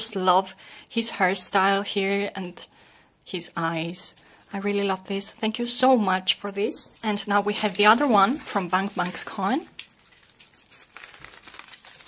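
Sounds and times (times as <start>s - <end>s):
bubble wrap crinkling and crackling: 6.4s - 12.0s.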